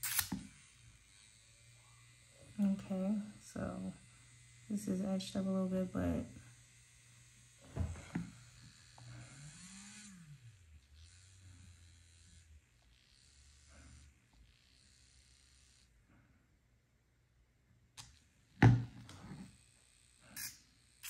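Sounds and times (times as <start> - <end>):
electric nail drill motor: 0.0 - 16.6, 17.8 - 21.0.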